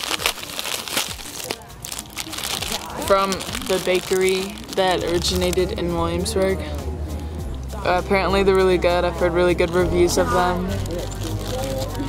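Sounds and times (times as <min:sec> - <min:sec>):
plastic bag crinkling: 0:00.0 - 0:06.6, 0:09.6 - 0:12.0.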